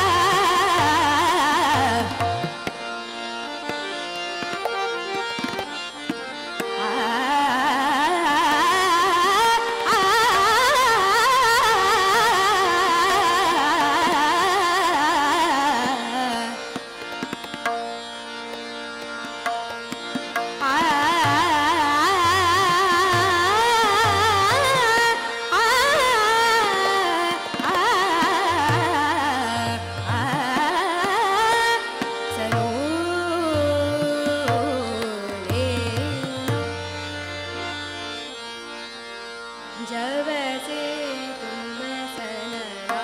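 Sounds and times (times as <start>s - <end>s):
harmonium notes: 0.0s - 43.0s
tanpura drone: 0.0s - 43.0s
tabla strokes: 18.6s - 37.2s.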